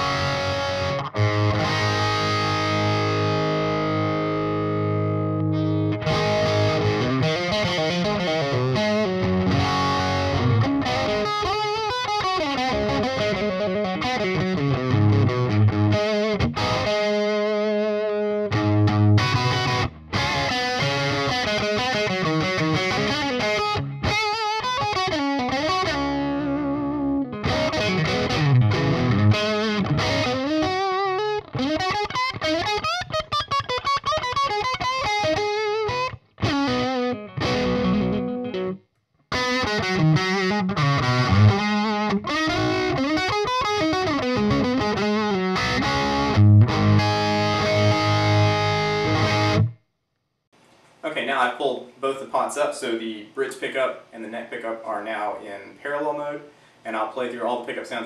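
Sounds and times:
distorted electric guitar riffs: 0.0 - 49.8.

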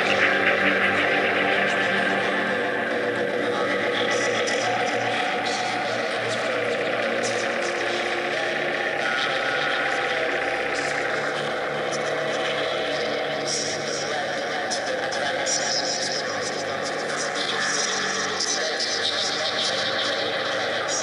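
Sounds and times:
synthesizer drone: 0.0 - 21.0.

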